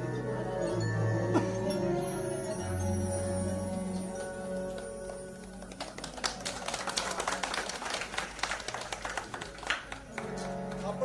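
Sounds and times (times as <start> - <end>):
crowd applauding: 4.5 - 11.0.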